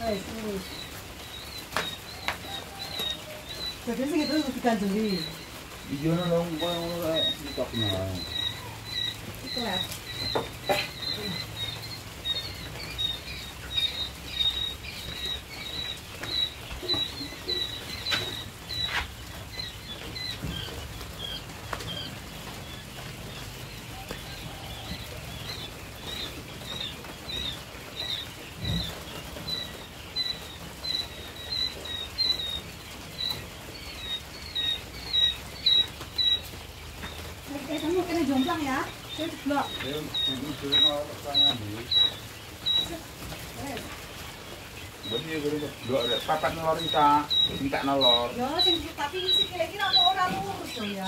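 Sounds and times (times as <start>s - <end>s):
chicks peeping: 0.0s - 51.0s.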